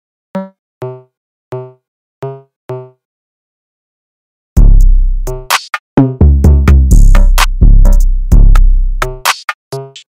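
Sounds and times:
plucked synthesizer notes: 0:04.6 - 0:09.2.

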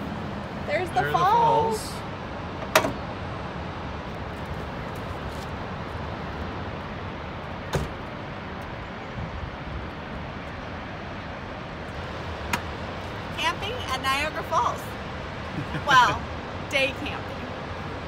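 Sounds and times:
distant falling water: 0:00.0 - 0:18.0
traffic rumble: 0:00.0 - 0:18.0.

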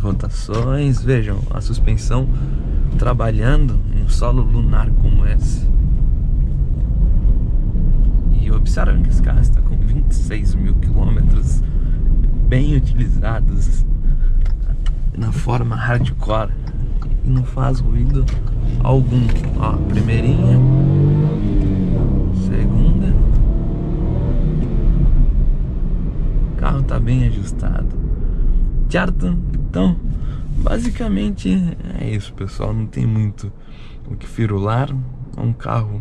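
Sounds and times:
car cabin rumble on rough road: 0:00.0 - 0:36.0.

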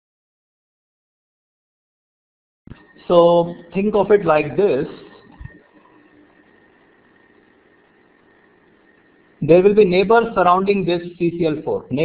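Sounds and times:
faint steady hiss: 0:02.7 - 0:12.0
thin high whine: 0:02.7 - 0:12.0.

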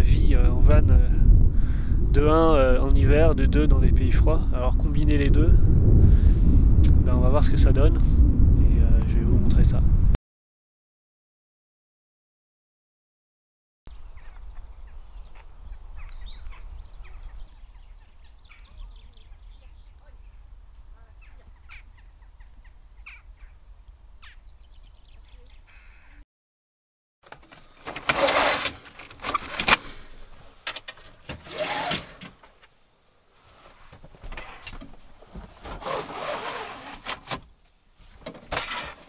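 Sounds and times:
bird chirps: 0:13.9 - 0:23.6, 0:24.2 - 0:26.2
rustling and knocks: 0:33.6 - 0:36.1.

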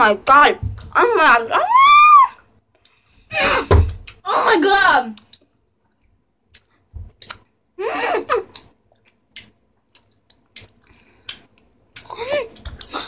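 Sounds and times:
children chewing gum: 0:05.2 - 0:13.0.

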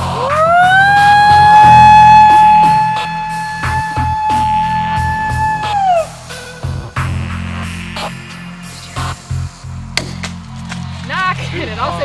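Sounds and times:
background music: 0:00.0 - 0:12.0
woman howling: 0:00.2 - 0:06.1.

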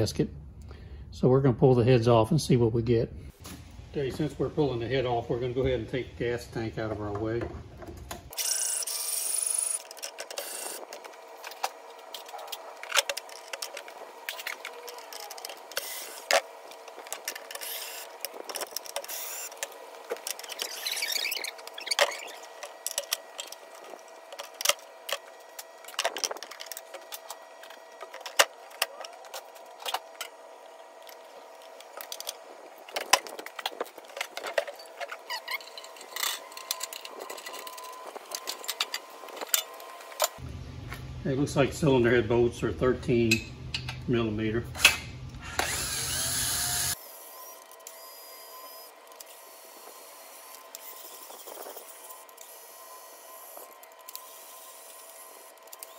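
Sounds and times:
cordless drill: 0:08.4 - 0:10.9, 0:17.6 - 0:18.2, 0:19.0 - 0:19.6, 0:45.4 - 0:55.9.

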